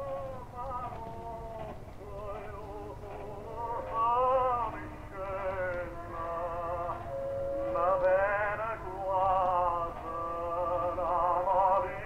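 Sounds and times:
operatic male voice singing: 0:00.0 - 0:12.0.

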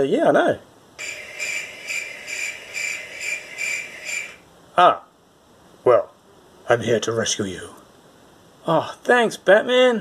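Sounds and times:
cricket chirping: 0:01.0 - 0:04.5.

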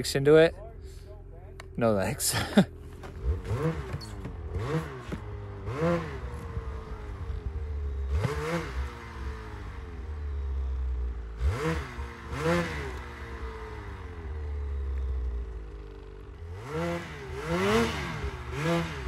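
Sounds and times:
snowmobile engine idling: 0:00.0 - 0:11.4, 0:12.0 - 0:19.0
snowmobile engine revving: 0:01.8 - 0:19.0.

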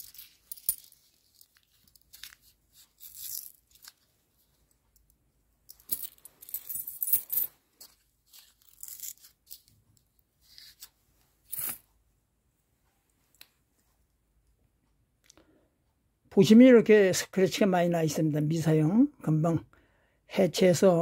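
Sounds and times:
coins clinking in hand: 0:00.0 - 0:04.1, 0:05.7 - 0:09.7, 0:11.5 - 0:11.8.

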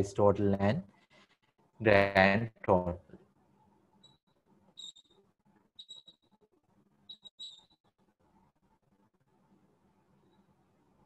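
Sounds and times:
faint high-pitched chirps: 0:04.0 - 0:06.4, 0:07.0 - 0:08.0, 0:10.1 - 0:10.6.

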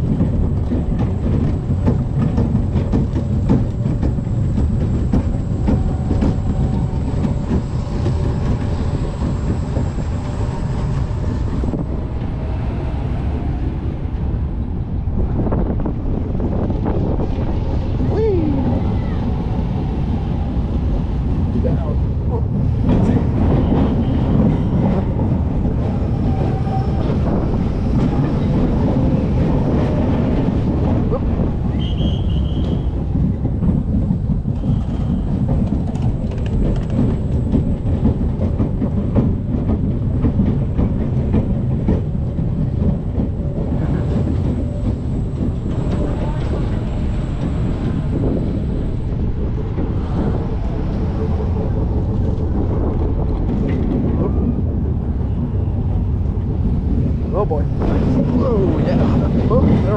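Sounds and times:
roller coaster rumbling on track: 0:00.0 - 0:59.9.

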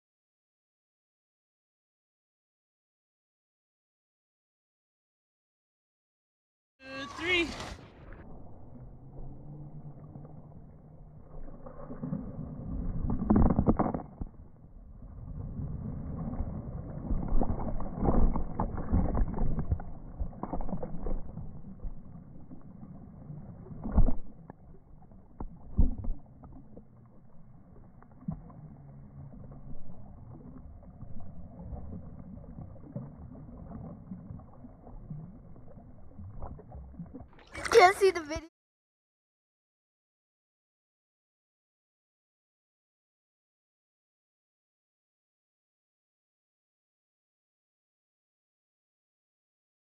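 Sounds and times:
muffled water sloshing: 0:06.8 - 0:38.5
person splashing into pool: 0:06.9 - 0:07.9, 0:36.1 - 0:38.4.

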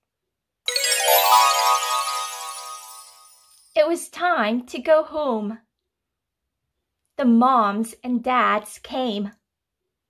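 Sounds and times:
bright electronic chime: 0:00.7 - 0:03.7.

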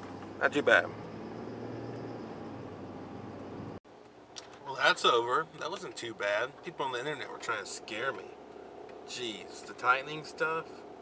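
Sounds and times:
engine and road noise in cabin: 0:00.0 - 0:04.5, 0:05.1 - 0:11.0.

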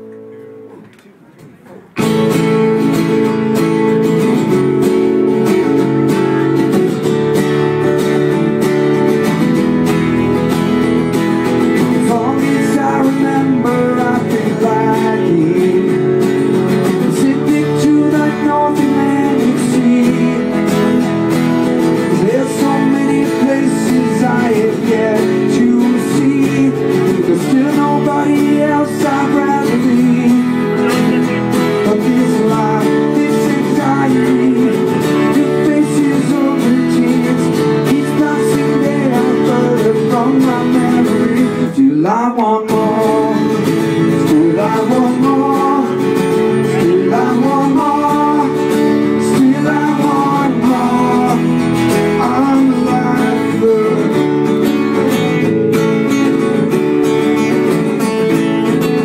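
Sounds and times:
acoustic guitars strumming chords: 0:00.0 - 0:59.0.

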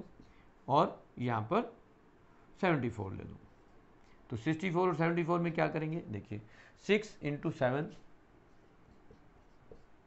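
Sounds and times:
marker pen writing on whiteboard: 0:07.8 - 0:10.0.

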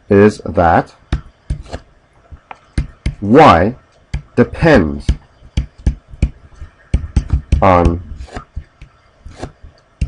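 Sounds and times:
stylus tapping on pen tablet: 0:02.5 - 0:03.2, 0:05.1 - 0:07.7.

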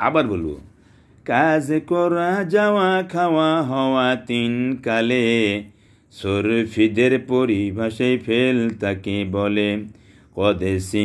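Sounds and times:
man chanting in sing-song melody: 0:00.0 - 0:11.0.

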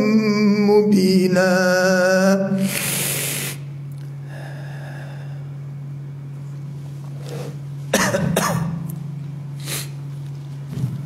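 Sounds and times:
steady low hum: 0:00.0 - 0:11.0
man coughing: 0:07.9 - 0:08.9.

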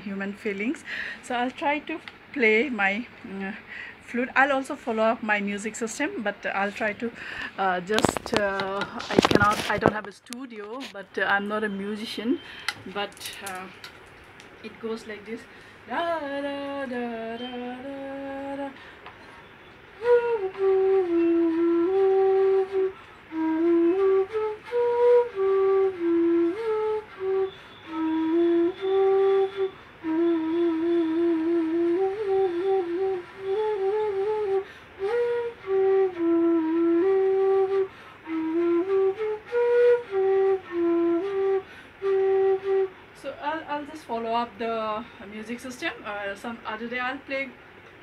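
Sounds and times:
woman's voice: 0:00.0 - 0:13.8, 0:14.6 - 0:18.7, 0:43.2 - 0:47.6
bamboo flute melody: 0:15.9 - 0:18.8, 0:19.4 - 0:43.8.

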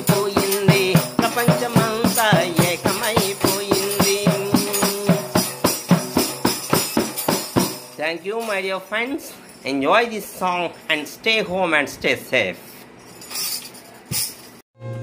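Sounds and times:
man singing: 0:00.0 - 0:05.7
tambourine beaten in fast rhythm: 0:00.0 - 0:08.5.

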